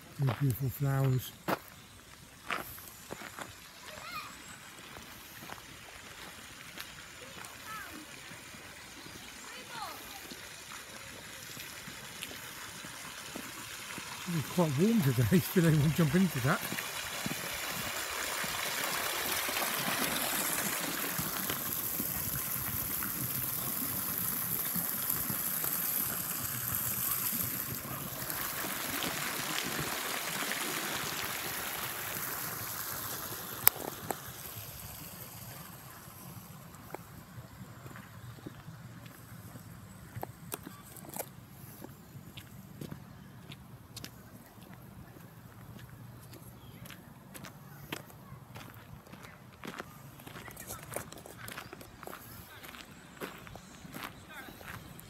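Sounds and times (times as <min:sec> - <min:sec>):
fountain water splashing: 0:00.0 - 0:46.4.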